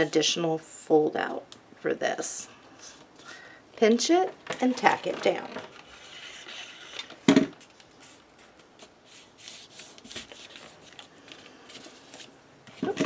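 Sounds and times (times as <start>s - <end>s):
paper rustling and sliding: 4.6s - 13.0s.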